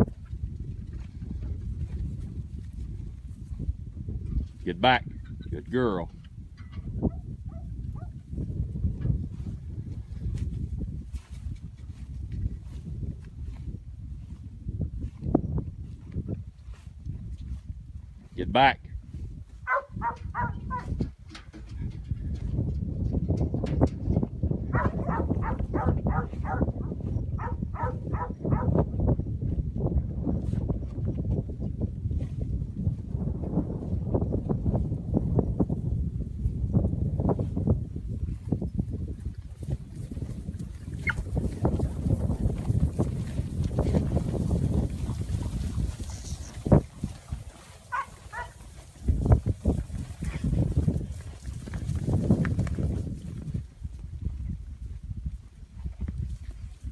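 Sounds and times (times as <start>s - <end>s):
cattle hoofbeats on grass: 0.0s - 4.5s, 6.5s - 18.3s, 19.1s - 35.8s, 36.5s - 56.9s
wind on microphone: 0.0s - 56.9s
dog and cattle calling: 7.1s - 8.2s, 19.6s - 21.0s, 24.7s - 28.8s, 40.9s - 41.3s, 47.9s - 48.7s.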